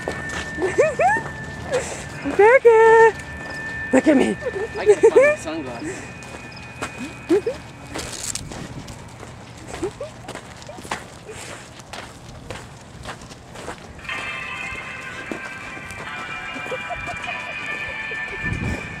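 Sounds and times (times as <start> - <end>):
music holding a chord: 0.0 - 8.0, 14.0 - 19.0
footsteps on dirt: 0.0 - 17.4.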